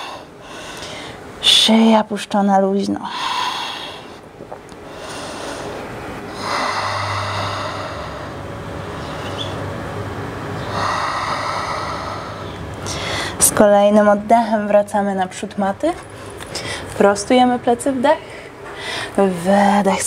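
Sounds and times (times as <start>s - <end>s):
woman breathing deeply: 0.0s - 1.4s, 3.1s - 9.6s, 10.6s - 13.4s, 16.5s - 17.0s, 18.2s - 19.2s.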